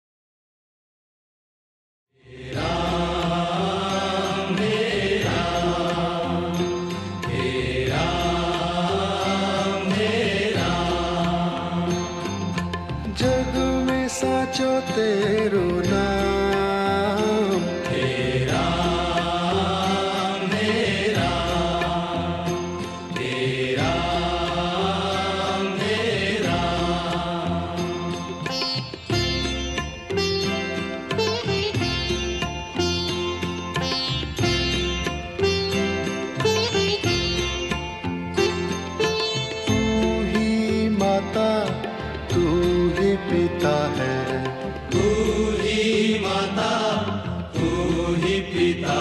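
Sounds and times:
devotional chanting: 0:02.2 - 0:29.6, 0:39.3 - 0:49.0.

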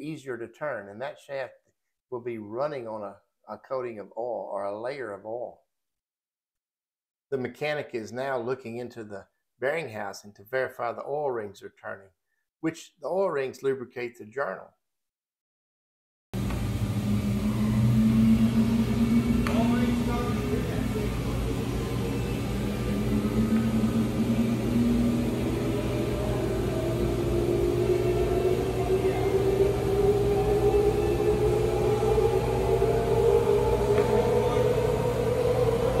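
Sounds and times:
motor electrical hum: 0:16.4 - 0:36.0
motor whine rising in pitch: 0:16.4 - 0:36.0.

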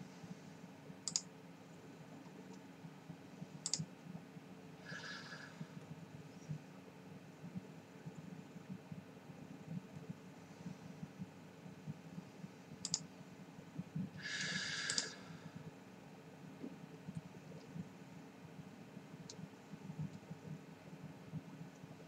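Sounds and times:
sharp clicks: 0:01.0 - 0:01.3, 0:03.6 - 0:03.9, 0:12.8 - 0:13.0, 0:14.9 - 0:15.2
short breath exhale: 0:14.2 - 0:15.5.

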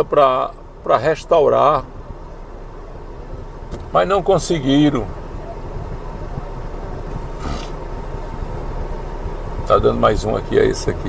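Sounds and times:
car engine rumble inside cabin: 0:00.0 - 0:11.0
rustling scrape: 0:07.2 - 0:08.4.

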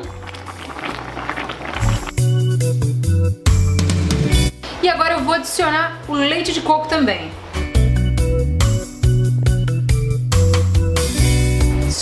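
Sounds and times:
shrimp splashing into broth: 0:00.0 - 0:02.2
broth bubbling: 0:00.0 - 0:02.3
background music with bass: 0:00.0 - 0:04.7, 0:07.3 - 0:12.0.

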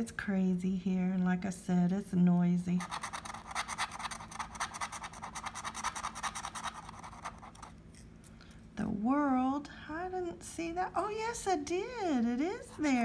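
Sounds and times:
lottery ticket being scratched: 0:02.8 - 0:07.8.

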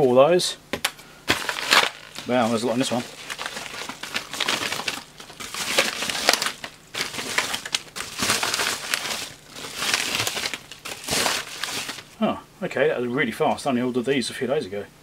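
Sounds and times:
plastic packaging crinkling: 0:01.3 - 0:12.2.

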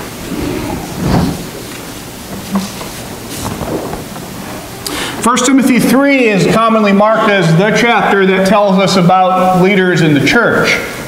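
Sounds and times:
rumbling hissing background noise: 0:00.0 - 0:11.0
soft knocks and rustles: 0:00.3 - 0:04.7.

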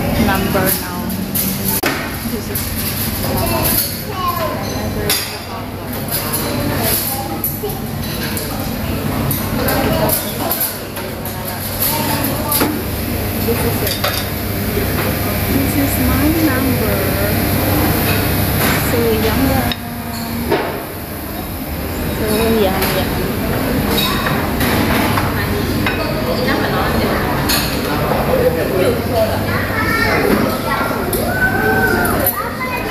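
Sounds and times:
background chatter: 0:00.0 - 0:32.9.

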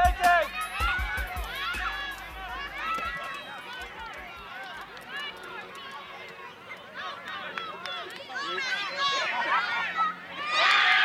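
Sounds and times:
crowd chatter and calls: 0:00.0 - 0:11.0.

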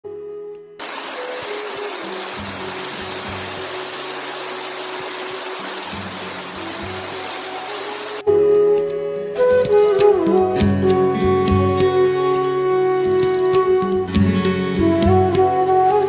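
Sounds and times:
soft music: 0:00.0 - 0:04.7, 0:05.6 - 0:16.0
waterfall cascading over rocks: 0:00.8 - 0:08.2.

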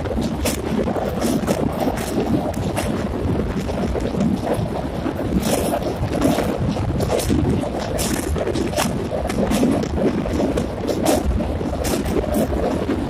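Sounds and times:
train wheels rumbling on rails: 0:00.0 - 0:13.0
wind buffeting microphone: 0:00.0 - 0:13.0.

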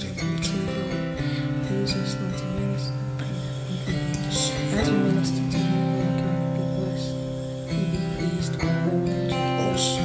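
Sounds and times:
guitar chords: 0:00.0 - 0:10.0.

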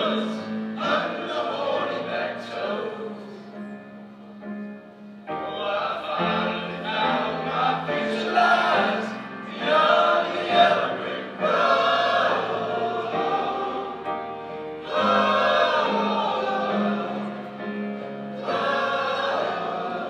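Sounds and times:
male chorus singing pop song: 0:00.0 - 0:03.6, 0:05.4 - 0:20.0.

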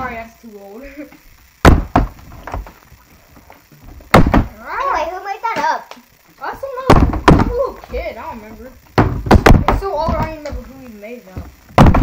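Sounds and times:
plastic bottle thudding on table: 0:01.6 - 0:02.8, 0:04.1 - 0:04.5, 0:06.9 - 0:07.6, 0:09.0 - 0:10.3, 0:11.7 - 0:12.0.

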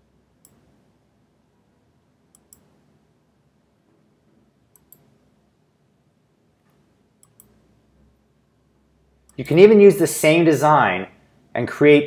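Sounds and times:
computer mouse clicks: 0:00.4 - 0:00.7, 0:02.3 - 0:02.8, 0:04.7 - 0:05.1, 0:06.7 - 0:07.6.

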